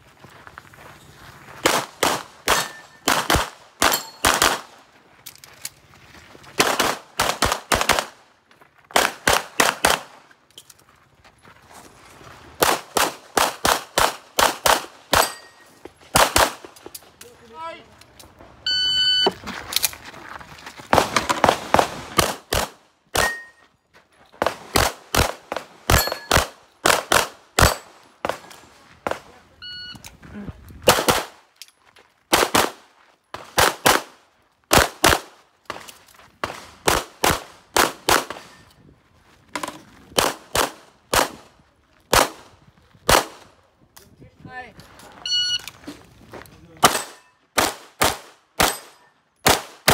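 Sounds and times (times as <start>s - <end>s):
pistol shots: 1.6s - 4.8s, 6.6s - 8.2s, 8.9s - 10.2s, 12.6s - 15.4s, 16.1s - 16.7s, 24.4s - 28.4s, 30.9s - 31.4s, 46.8s - 49.9s
shot timer beep: 18.7s - 19.4s, 29.6s - 30.0s, 45.2s - 45.7s.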